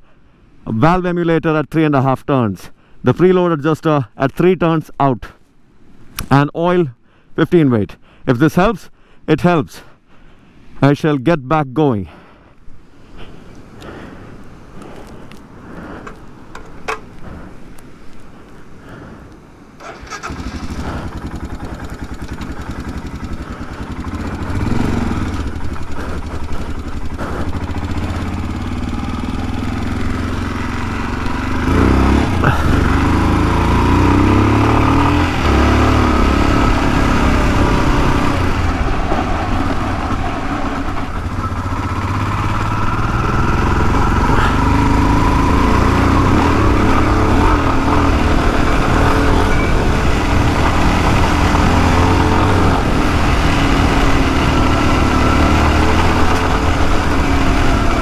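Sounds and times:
motorcycle engine revving: 19.8 - 58.0.

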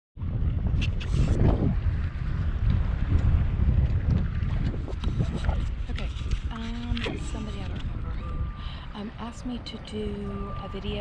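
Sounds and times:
wind buffeting microphone: 0.2 - 11.0.

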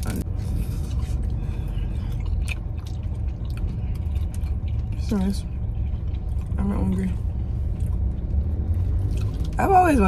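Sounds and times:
mouth clicks and crunches: 0.0 - 7.1, 7.7 - 9.6
person chewing pizza: 0.0 - 9.6
low rumble in car cabin: 0.0 - 10.0.

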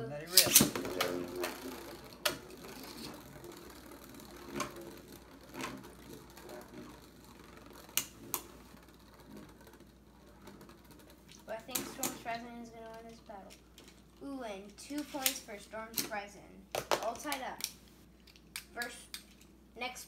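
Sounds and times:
spinning tops whirring: 0.0 - 16.3
spinning tops clacking: 0.3 - 16.2.

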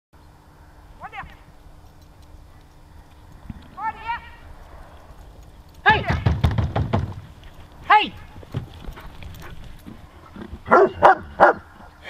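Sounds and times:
dog yelping: 10.7 - 11.7.

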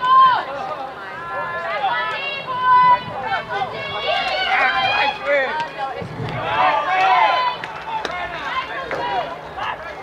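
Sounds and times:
people calling and shouting: 0.0 - 10.0.

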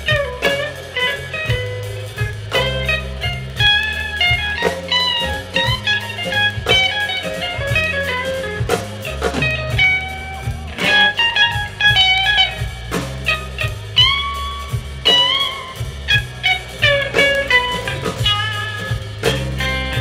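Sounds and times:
drums: 0.0 - 20.0
electric bass: 0.0 - 20.0
electric guitar lead: 0.0 - 20.0.

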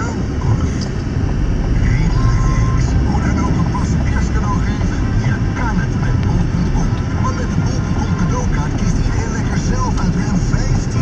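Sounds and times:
people talking: 0.0 - 0.9, 1.8 - 11.0
car engine rumble: 0.0 - 11.0
road noise: 0.0 - 11.0.

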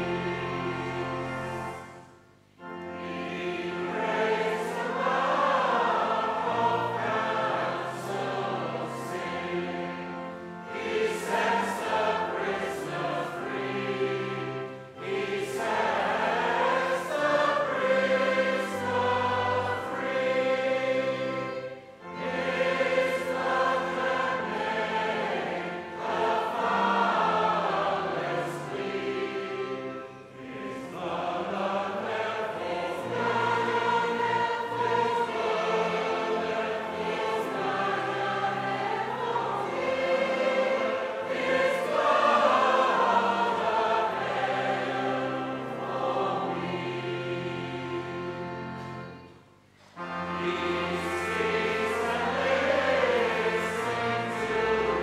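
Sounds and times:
choir singing in harmony: 0.0 - 55.0.

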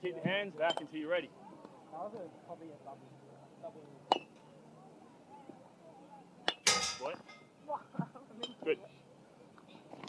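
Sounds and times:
metal bat pinging a ball: 6.5 - 7.2.

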